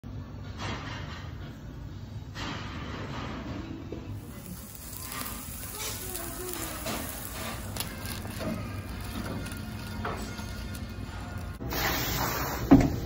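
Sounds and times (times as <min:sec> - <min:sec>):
crackling sizzle-like noise: 0:03.9 - 0:13.0
faint voices: 0:04.2 - 0:11.6.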